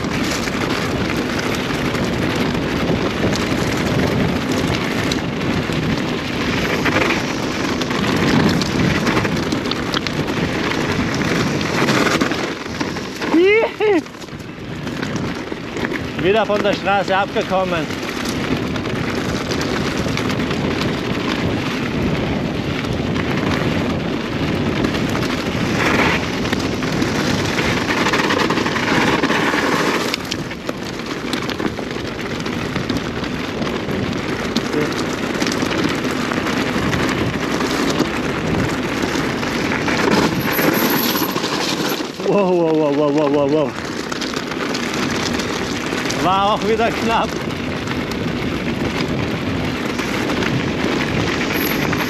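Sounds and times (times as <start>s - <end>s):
bike tyre and frame rattle: 0.0s - 52.0s
wind rushing over microphone: 0.0s - 52.0s.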